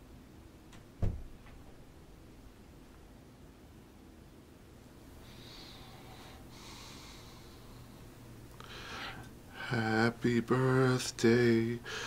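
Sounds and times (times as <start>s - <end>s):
faint low room hum: 0.0s - 12.0s
soft sniffing breath: 5.2s - 9.3s.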